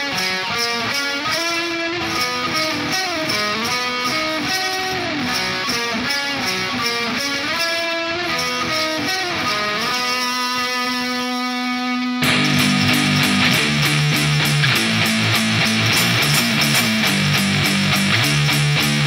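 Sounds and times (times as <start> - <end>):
electric guitar melody: 0.0 - 19.0
steady rock beat: 12.2 - 19.0.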